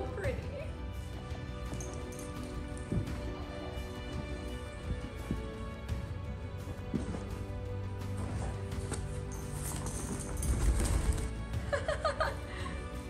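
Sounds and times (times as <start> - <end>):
background music: 0.0 - 13.0
horse shifting in sand: 1.2 - 11.6.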